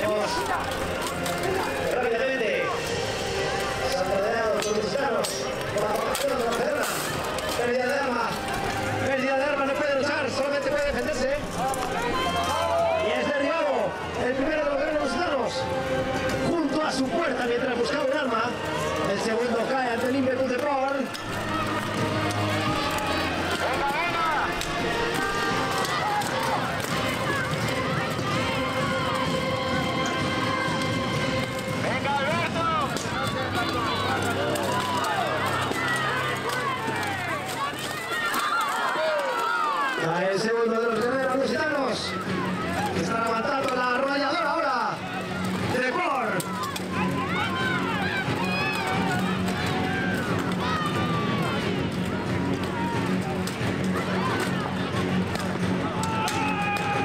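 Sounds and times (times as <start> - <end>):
shouting voices: 0.0 - 57.0.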